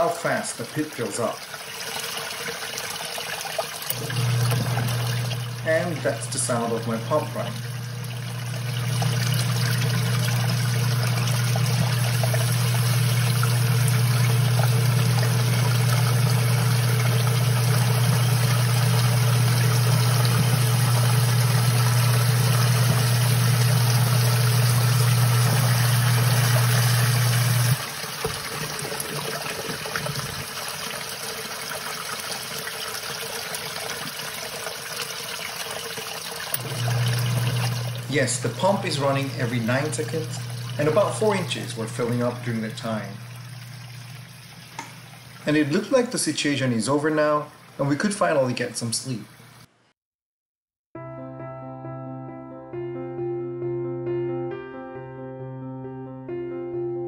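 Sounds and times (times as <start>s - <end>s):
sump pump humming: 0.0s - 49.7s
water trickling: 0.0s - 49.7s.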